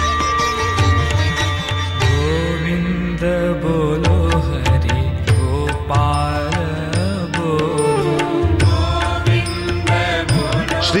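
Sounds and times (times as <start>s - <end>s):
percussion beat: 0.0s - 2.5s, 4.1s - 11.0s
person singing chant-like melody: 2.2s - 11.0s.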